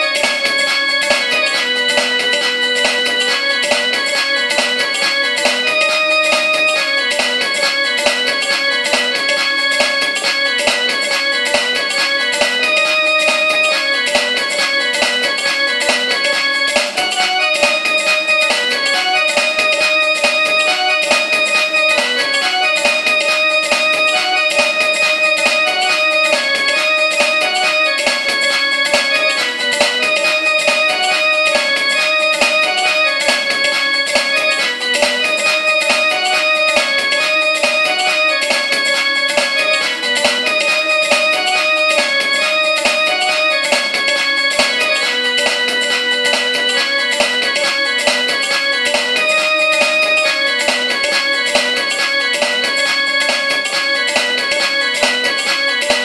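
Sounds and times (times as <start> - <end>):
electronic keyboard fast melody: 0.0 - 56.0.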